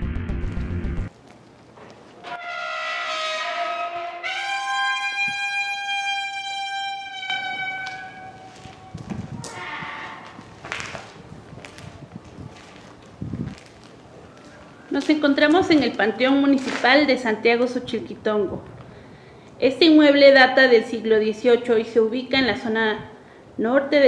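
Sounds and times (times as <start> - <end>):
iron gate hinge squealing: 2.2 - 10.4.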